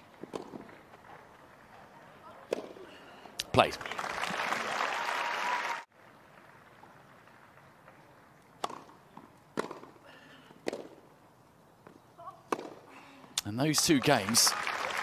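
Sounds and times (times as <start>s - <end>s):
tennis racket hitting ball: 0.2s - 0.7s, 2.4s - 2.8s, 8.6s - 10.0s, 10.6s - 11.1s, 12.4s - 12.9s
crowd applause: 3.6s - 6.7s, 13.8s - 15.0s.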